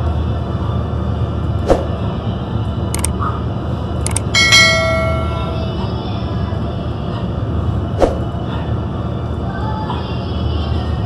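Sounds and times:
bright bell ding: 0:04.4 - 0:05.9.

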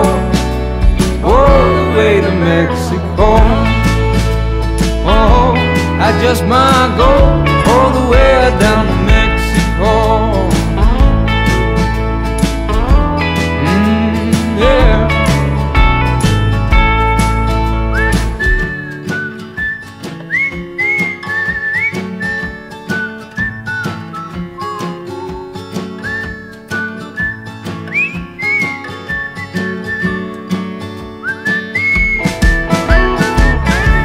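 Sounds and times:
bass and drums: 0:00.0 - 0:34.0
picked guitar: 0:00.0 - 0:34.0
whistled melody: 0:16.9 - 0:34.0.

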